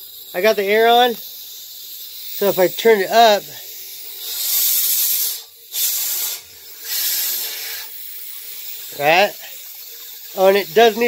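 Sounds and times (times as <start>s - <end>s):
compressed air hissing bursts: 0.0s - 11.0s.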